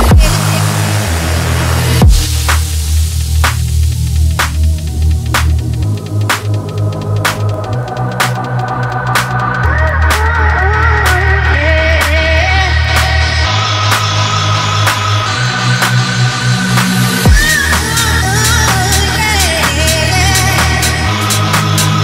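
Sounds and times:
falling bass sweep: 0:00.0 - 0:22.0
heavy bass line: 0:00.0 - 0:22.0
steady dance beat: 0:00.0 - 0:22.0.

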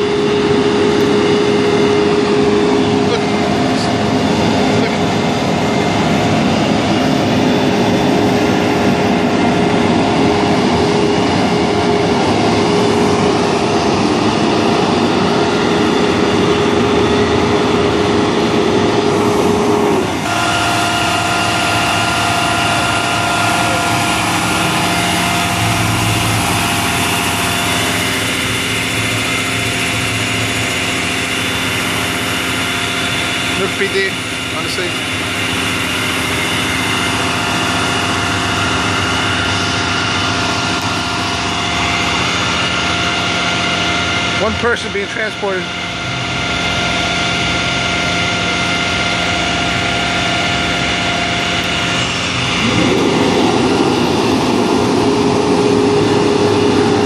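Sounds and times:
diesel engines idling: 0:00.0 - 0:57.0
engine drone with steady tones: 0:00.0 - 0:57.0.

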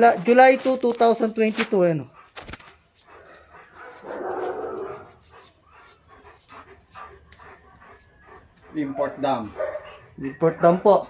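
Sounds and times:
faint dog sounds: 0:00.2 - 0:11.0.

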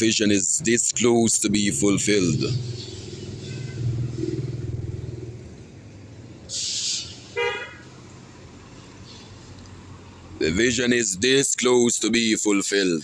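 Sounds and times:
vehicle engine rumble: 0:00.0 - 0:12.5
car horn toot: 0:02.8 - 0:04.0, 0:07.4 - 0:07.8
tyre hiss on wet road: 0:06.4 - 0:09.9.

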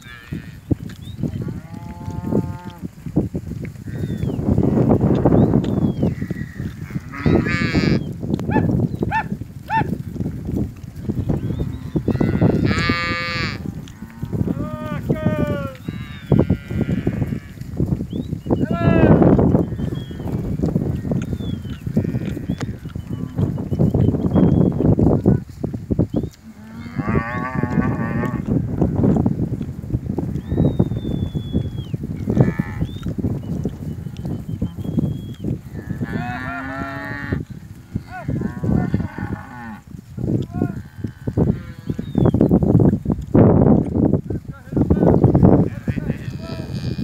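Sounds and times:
cows mooing: 0:00.0 - 0:03.0, 0:03.8 - 0:10.0, 0:11.0 - 0:17.6, 0:19.0 - 0:23.8, 0:26.4 - 0:29.1, 0:32.2 - 0:33.0, 0:33.8 - 0:39.9, 0:40.5 - 0:42.3, 0:45.6 - 0:47.0.

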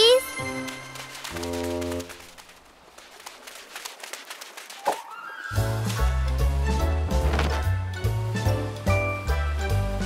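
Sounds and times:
rapid light ticks: 0:00.4 - 0:04.9.

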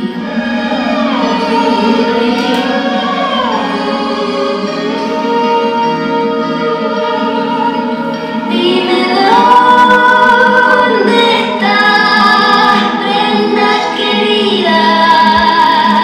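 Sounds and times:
woman singing slow melody: 0:00.0 - 0:16.0.

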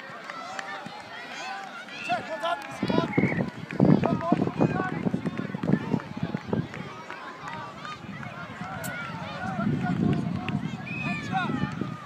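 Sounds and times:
children shouting and calling out: 0:00.0 - 0:12.0.

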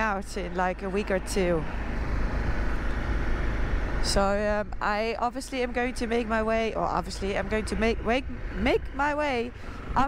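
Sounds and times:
low motorcycle rumble: 0:00.0 - 0:10.0
wind rushing over microphone: 0:00.0 - 0:10.0.

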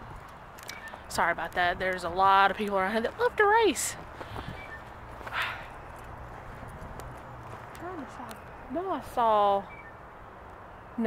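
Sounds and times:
wind rumble on microphone: 0:00.0 - 0:08.7
footsteps walking: 0:00.1 - 0:08.6.

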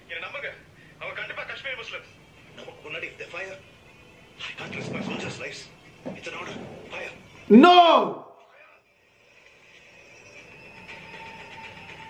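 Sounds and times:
man speaking: 0:07.5 - 0:08.3.

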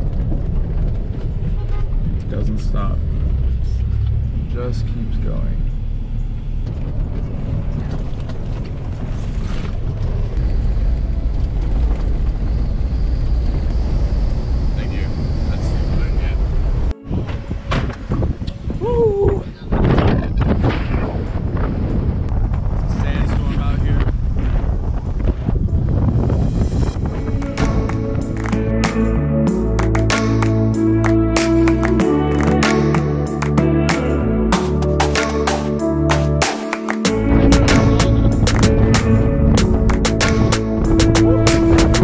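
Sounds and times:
wind buffeting microphone: 0:00.0 - 0:04.5, 0:05.9 - 0:28.6, 0:37.3 - 0:42.0
car rumbling from inside cabin: 0:00.0 - 0:20.5
music: 0:16.9 - 0:18.8, 0:26.0 - 0:42.0.

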